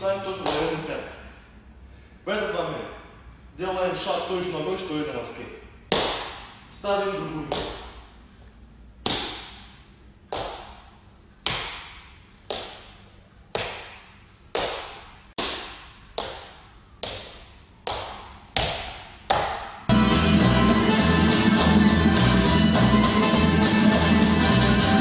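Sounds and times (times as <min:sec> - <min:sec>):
music: 0:19.9 - 0:25.0.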